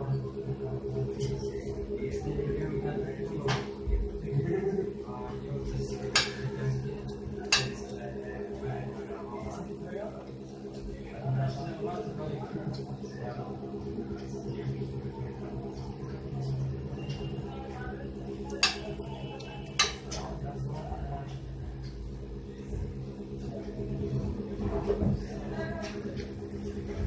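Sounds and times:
low hum: 0.0s - 27.0s.

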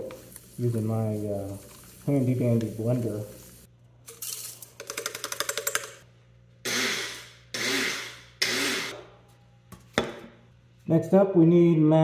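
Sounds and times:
electric blender pulsing: 6.7s - 9.0s.

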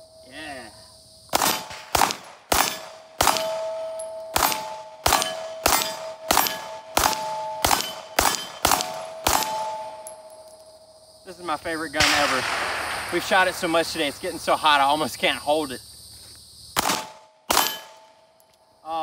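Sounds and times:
pistol shots: 1.3s - 10.3s, 12.0s - 14.5s, 16.8s - 18.2s
steel target plates ringing: 2.7s - 10.9s.

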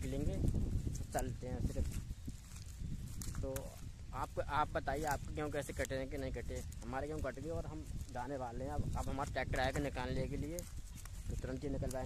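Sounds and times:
footsteps on dry ground: 0.0s - 12.0s
wind rumble on microphone: 0.0s - 12.0s.

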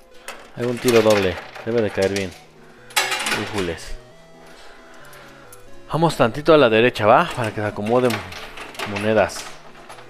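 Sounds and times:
background music: 0.0s - 10.0s
coin clinking into machine: 0.2s - 4.0s, 7.1s - 10.0s
person speaking: 0.6s - 2.5s, 3.1s - 4.3s, 5.2s - 9.6s.

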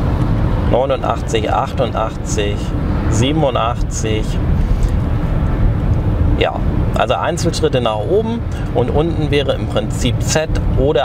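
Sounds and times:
car cabin driving rumble: 0.0s - 11.0s.

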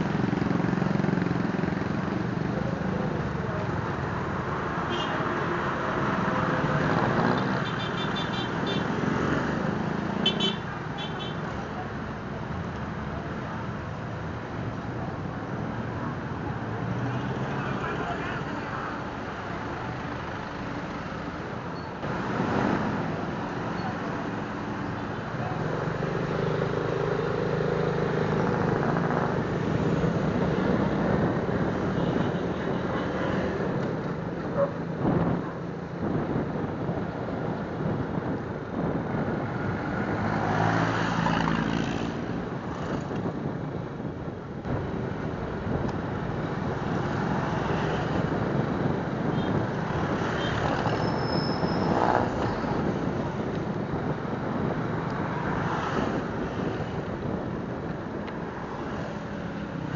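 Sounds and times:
street traffic: 0.0s - 59.9s
wind noise on microphone: 28.0s - 59.9s.

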